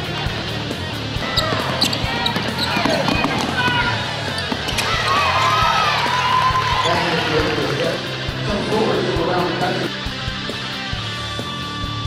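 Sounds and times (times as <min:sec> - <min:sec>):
background music: 0:00.0 - 0:12.0
sneakers squeaking on court: 0:01.2 - 0:05.0
ball bouncing: 0:01.4 - 0:04.9.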